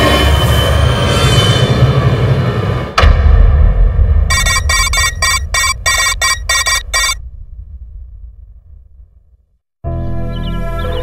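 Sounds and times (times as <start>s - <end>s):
deep rumbling boom: 3.0s - 4.3s, 7.2s - 9.6s
short bright electronic stabs: 4.3s - 7.2s.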